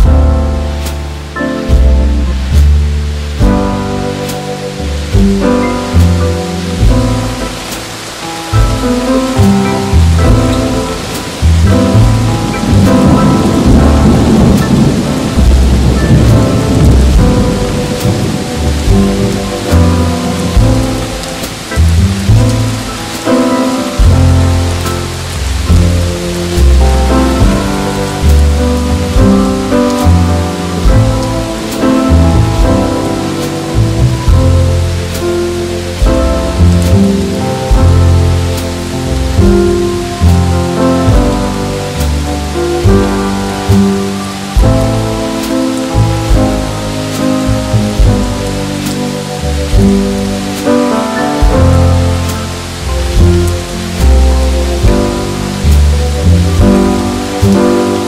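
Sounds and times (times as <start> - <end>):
slow jazz with bass line: 0.0 - 58.0
steady rain: 0.0 - 58.0
thunder rolling: 0.0 - 58.0.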